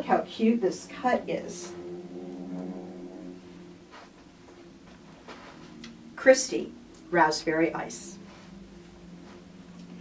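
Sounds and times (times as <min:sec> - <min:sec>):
low steady hum of held tones: 0:00.0 - 0:10.0.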